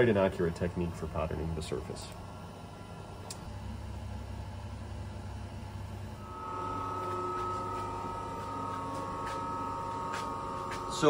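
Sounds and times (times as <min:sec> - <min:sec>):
electrical hum: 0:00.0 - 0:11.0
high whining tones: 0:06.1 - 0:11.0.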